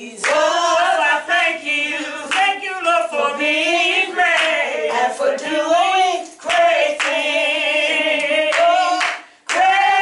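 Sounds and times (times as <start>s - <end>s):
woman singing unaccompanied: 0.0s - 10.0s
hand claps: 0.2s - 0.4s, 2.3s - 2.6s, 6.2s - 7.2s, 8.2s - 9.8s.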